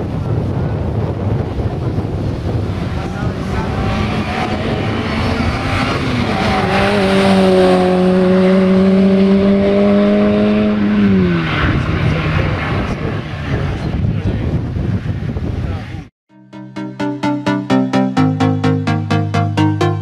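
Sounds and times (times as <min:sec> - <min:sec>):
rally car engine revving high: 0:02.5 - 0:13.9.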